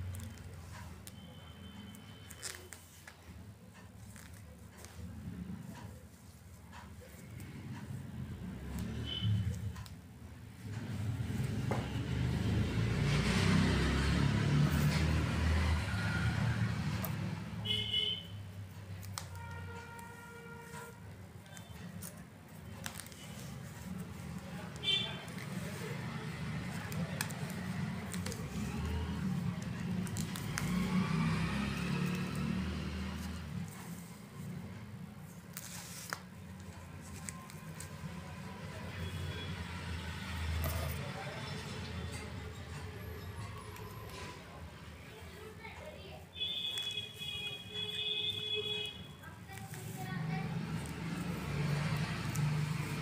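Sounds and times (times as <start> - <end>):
passing motor vehicle rumble: 4.1 - 47.7, 48.8 - 53.0.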